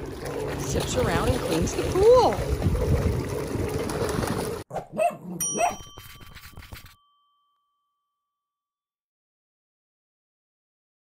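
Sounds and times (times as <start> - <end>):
pool robot churning water: 0.0 - 4.7
cartoon dog barks: 4.7 - 5.8
bell-like ding: 5.4 - 8.6.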